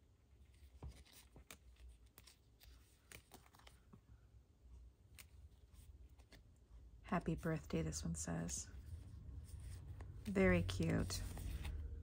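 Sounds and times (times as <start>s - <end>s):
paper stickers rustling and clicking: 0.4s - 4.0s.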